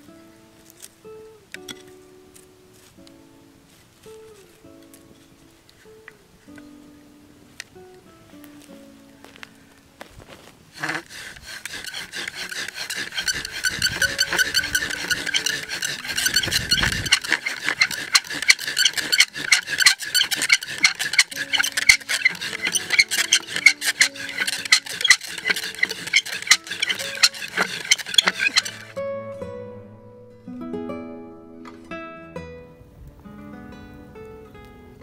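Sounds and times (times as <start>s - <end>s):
bow drill squeaking on wood: 10.7s - 29.0s.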